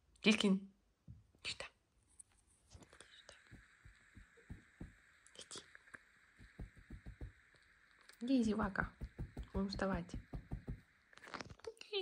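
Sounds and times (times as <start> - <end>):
steady hiss: 2.7 - 12.0
soft low thumps: 3.3 - 5.2, 6.4 - 7.6, 8.6 - 11.0.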